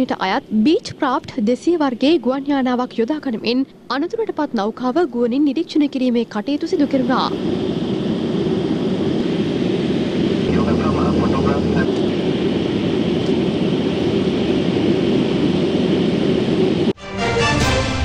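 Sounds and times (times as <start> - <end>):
aircraft engine drone: 0.0 - 18.0.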